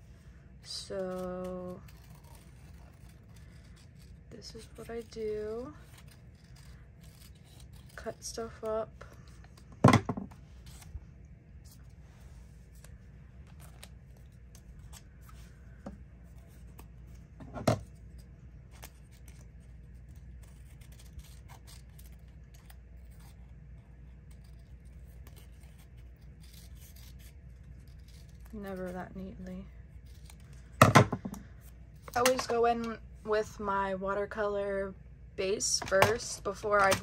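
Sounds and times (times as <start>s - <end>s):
scissors snipping paper: 0.7s - 9.8s, 12.7s - 29.4s.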